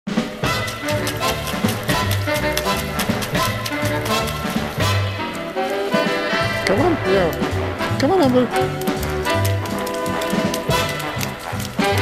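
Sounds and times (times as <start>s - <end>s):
music with beat and bass: 6.2s - 12.0s.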